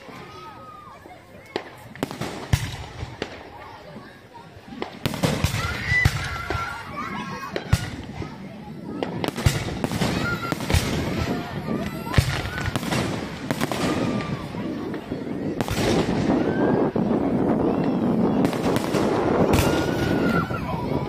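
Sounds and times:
fireworks crackling: 0:00.0 - 0:21.0
fireworks bangs: 0:01.4 - 0:21.0.

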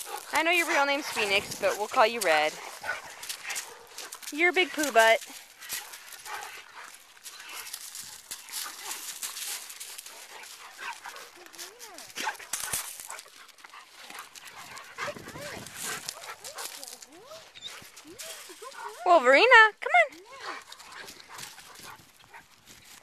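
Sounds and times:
scuffing on gravel and grass: 0:00.0 - 0:19.0, 0:20.2 - 0:23.0.

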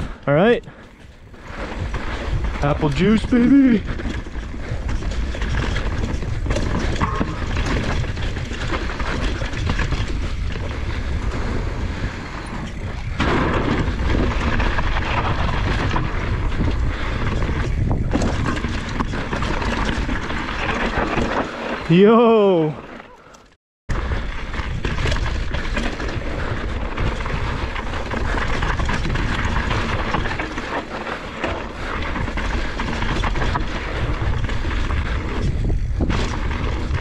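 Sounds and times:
bike knocking and rattling: 0:00.0 - 0:37.0
bike tyres on dirt: 0:00.0 - 0:37.0
wind rushing on microphone: 0:01.2 - 0:20.4, 0:31.8 - 0:37.0.

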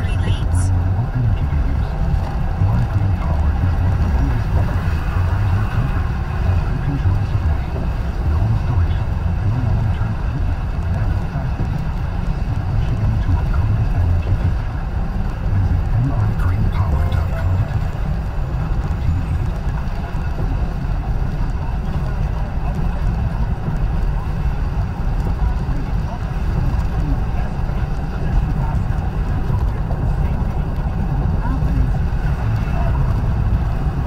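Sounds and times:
tyre and engine rumble in car: 0:00.0 - 0:34.0.

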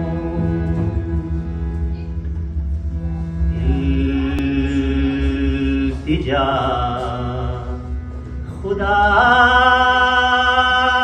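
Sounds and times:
harmonium drone: 0:00.0 - 0:11.0
person singing long notes: 0:03.2 - 0:11.0.

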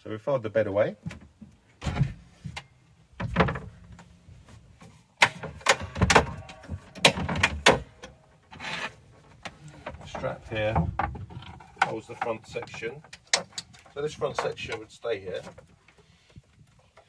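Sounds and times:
sharp knocks: 0:05.2 - 0:08.1.

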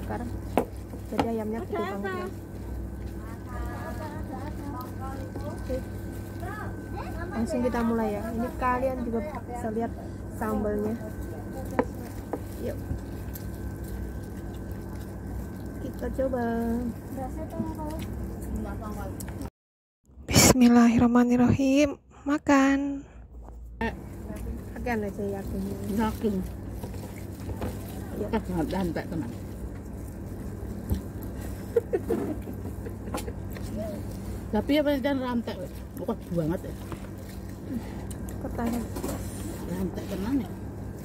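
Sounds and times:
low hum: 0:00.0 - 0:19.5, 0:20.1 - 0:41.0.

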